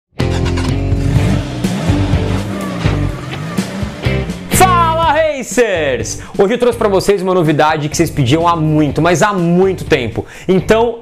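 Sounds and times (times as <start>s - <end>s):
music: 0.1s - 11.0s
car engine revving: 0.2s - 5.1s.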